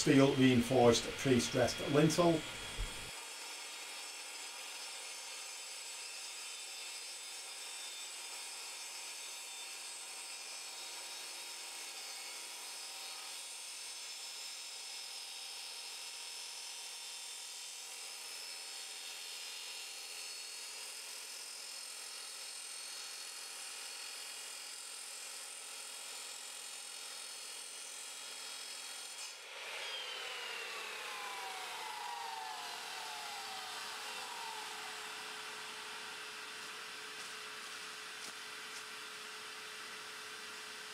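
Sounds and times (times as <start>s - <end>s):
saw blade winding down whine: 0.0s - 3.2s, 28.6s - 40.9s
saw grinding through concrete: 0.0s - 40.9s.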